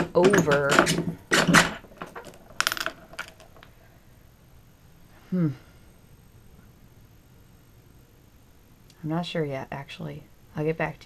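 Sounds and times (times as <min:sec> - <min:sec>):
metallic clicks and rattles: 0:00.0 - 0:03.7.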